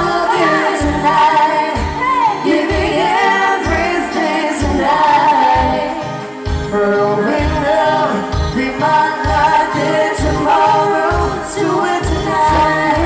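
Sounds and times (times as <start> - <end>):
electric guitar: 0.0 - 13.0
person singing: 0.0 - 13.0.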